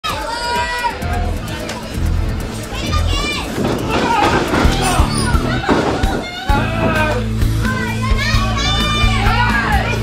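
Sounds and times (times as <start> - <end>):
crowd noise: 0.0 - 10.0
music: 0.0 - 10.0
child shouting: 2.7 - 3.6, 6.2 - 10.0.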